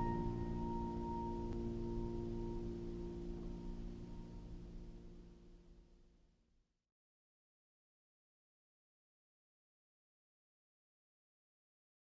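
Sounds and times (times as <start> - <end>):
piano chord ringing: 0.0 - 5.4.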